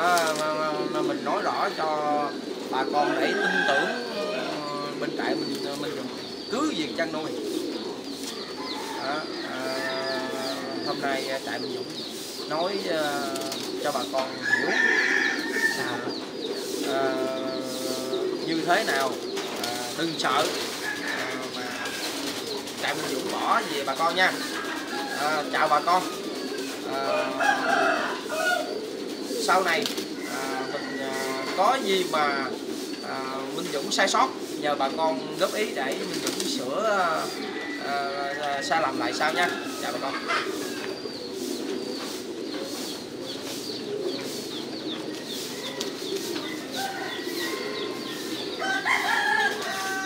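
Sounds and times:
long held bird call: 0:00.0 - 0:50.0
pigeons cooing: 0:00.0 - 0:50.0.

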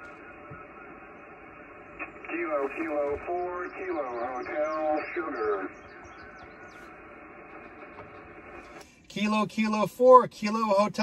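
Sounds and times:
radio receiver hiss: 0:00.0 - 0:09.8.

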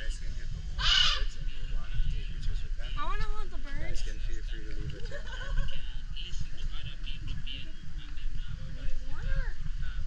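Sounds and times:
macaw harsh squawk: 0:00.8 - 0:01.4.

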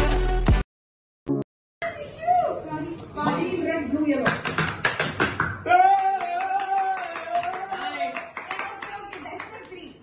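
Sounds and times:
hand claps: 0:04.2 - 0:09.8.

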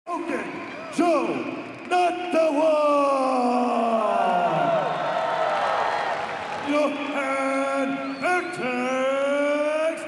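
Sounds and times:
announcer's amplified voice echoing: 0:00.1 - 0:04.5, 0:06.6 - 0:10.0.

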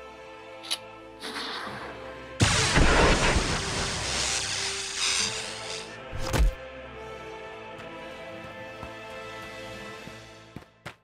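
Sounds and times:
background music: 0:00.0 - 0:11.0
loud blast: 0:01.2 - 0:05.0.

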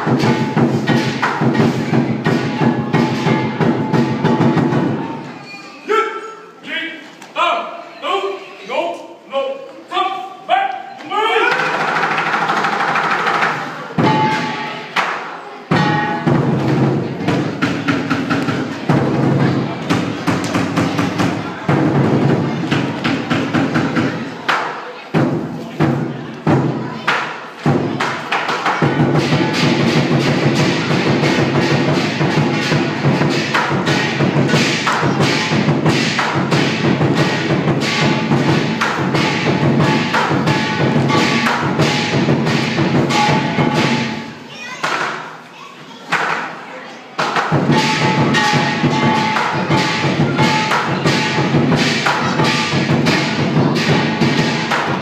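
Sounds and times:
big drum beating: 0:00.0 - 0:05.1, 0:11.5 - 0:14.8, 0:15.7 - 0:24.3, 0:25.1 - 0:45.0, 0:47.2 - 0:55.0.

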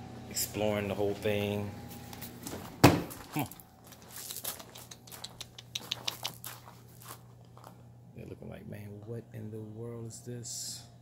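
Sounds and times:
low steady hum: 0:00.0 - 0:11.0
puppy claws clicking on concrete: 0:04.2 - 0:06.8.

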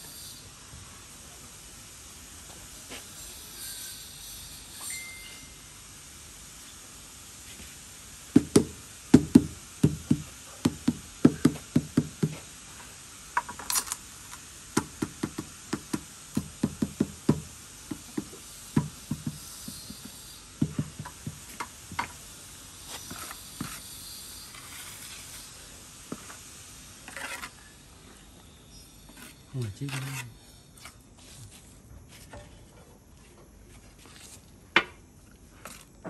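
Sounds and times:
dull knocks of tile tapping: 0:08.4 - 0:12.4, 0:14.8 - 0:22.1.

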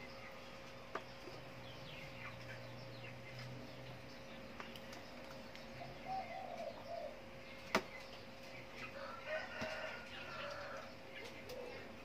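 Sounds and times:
birds calling: 0:00.0 - 0:12.0
birds chirping: 0:00.0 - 0:12.0.

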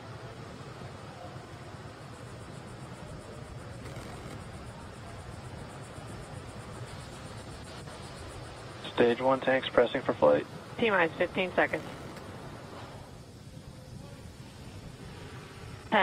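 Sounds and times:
ambient hiss: 0:00.0 - 0:16.0.

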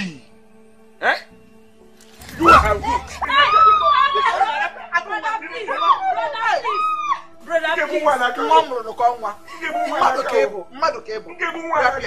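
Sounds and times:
people arguing: 0:02.0 - 0:12.0.

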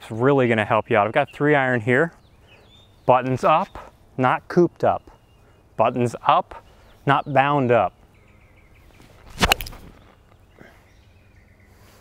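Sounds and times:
golf club striking ball: 0:09.3 - 0:09.8.

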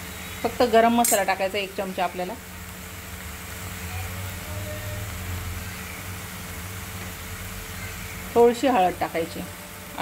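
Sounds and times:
food sizzling in a pan: 0:00.0 - 0:10.0
gas stove hum: 0:00.0 - 0:10.0.

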